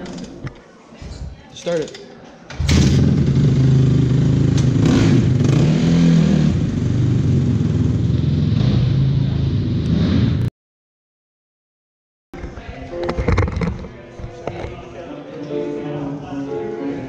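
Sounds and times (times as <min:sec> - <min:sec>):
dirt bike engine revving: 0:02.6 - 0:10.5.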